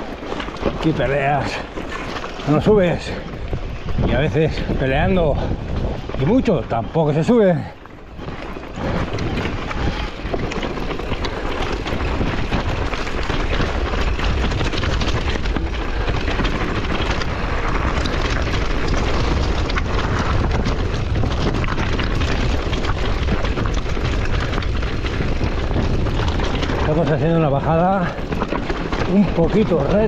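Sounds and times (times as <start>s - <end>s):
bike tyres crunching over stones: 0.0s - 30.0s
wind rumble on microphone: 0.0s - 30.0s.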